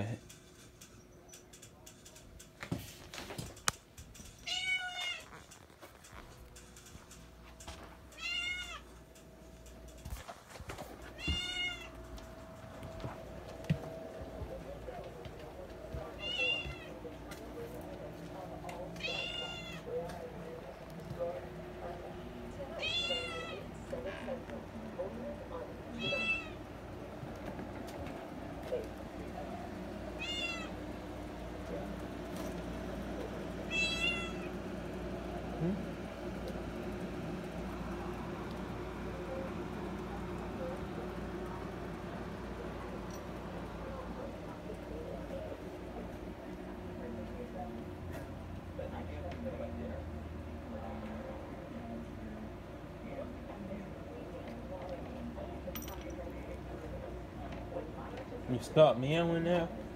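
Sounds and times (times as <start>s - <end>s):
cat meowing: 4.4s - 5.3s, 8.1s - 8.9s, 11.1s - 12.0s, 16.2s - 17.0s, 19.0s - 19.9s, 22.8s - 23.7s, 25.9s - 26.6s, 30.2s - 30.8s, 33.7s - 34.5s.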